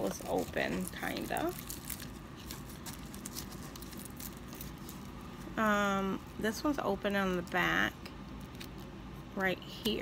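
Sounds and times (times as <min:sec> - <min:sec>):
foil-wrapped chocolates rustling: 0:00.0 - 0:08.9.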